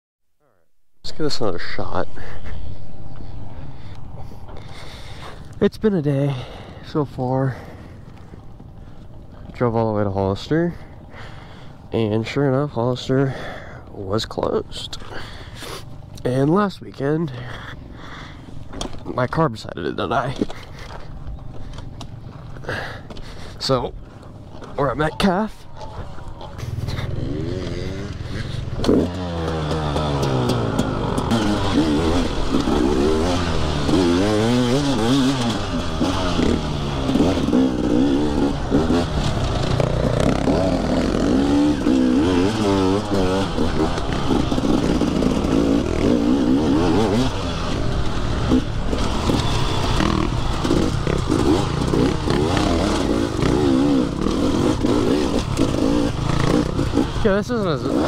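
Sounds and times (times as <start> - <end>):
dirt bike engine revving: 20.2 - 58.0.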